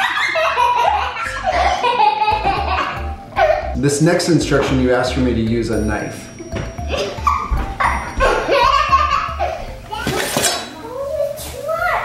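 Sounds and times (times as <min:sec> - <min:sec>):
boy laughing high-pitched: 0:00.0 - 0:03.8, 0:06.9 - 0:10.0.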